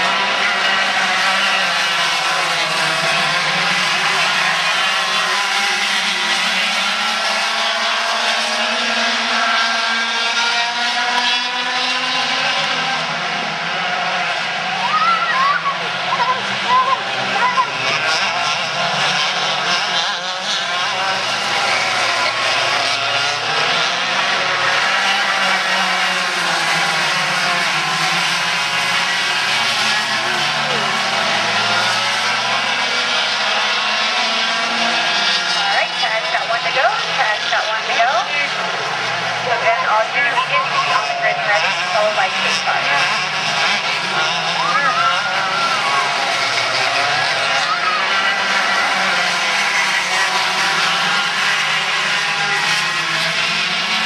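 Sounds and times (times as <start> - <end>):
go-kart engines whining: 0.0 - 54.0.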